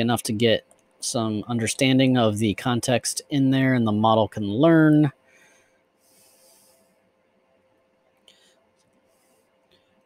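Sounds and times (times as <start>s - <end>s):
soft breath: 5.2s - 7.2s, 8.2s - 10.0s.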